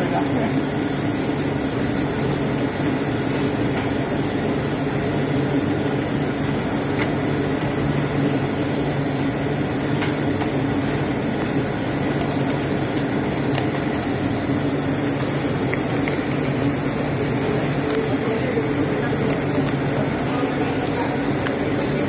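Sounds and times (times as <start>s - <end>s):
factory machinery drone: 0.0s - 22.0s.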